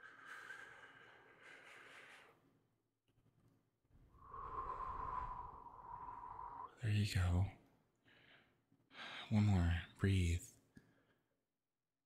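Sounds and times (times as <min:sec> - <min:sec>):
man breathing deeply: 0:00.0 - 0:02.6, 0:04.2 - 0:06.7.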